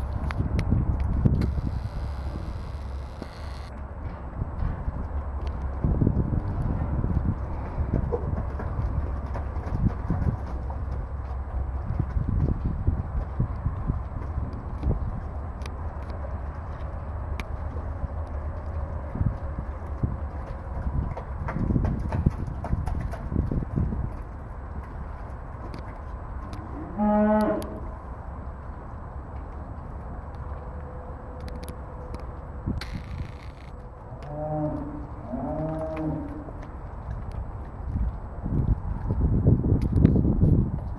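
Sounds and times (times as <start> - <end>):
cattle hooves thudding in mud: 0.0 - 30.7, 32.8 - 39.6
steady low rumble: 0.0 - 40.9.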